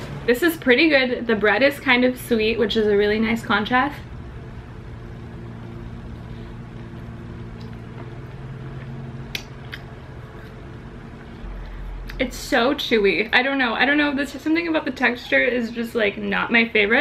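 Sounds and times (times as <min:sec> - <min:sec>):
steady low hum: 0:00.0 - 0:17.0
person chewing food: 0:06.7 - 0:12.2
soft mouth clicks: 0:08.8 - 0:10.6.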